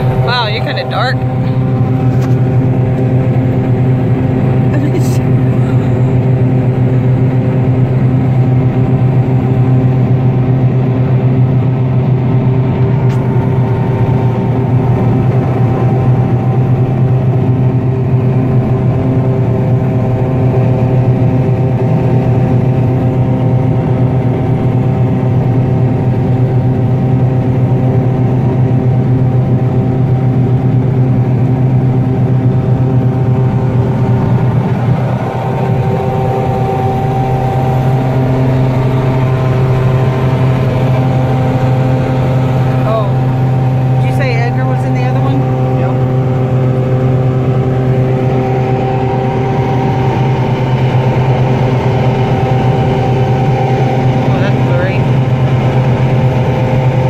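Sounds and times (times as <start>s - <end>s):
combine harvester drone: 0.0s - 57.0s.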